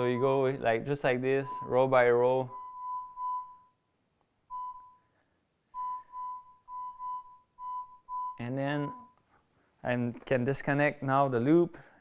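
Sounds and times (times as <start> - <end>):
electronic beeps: 1.4 - 3.8, 4.5 - 5.1, 5.8 - 9.2.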